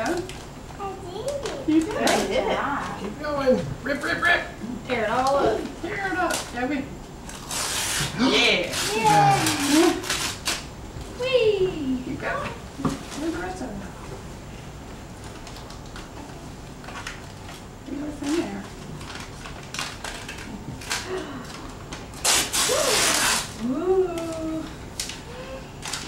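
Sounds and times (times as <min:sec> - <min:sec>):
child making wordless sounds: 0:00.8 - 0:01.7, 0:08.9 - 0:09.7
wrapping paper rustling and crinkling: 0:07.3 - 0:10.7, 0:16.8 - 0:23.6.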